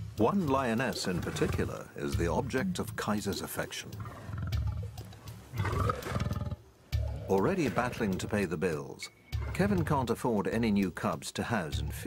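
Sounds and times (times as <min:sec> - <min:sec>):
lion growling: 0:00.9 - 0:02.6, 0:03.4 - 0:08.4.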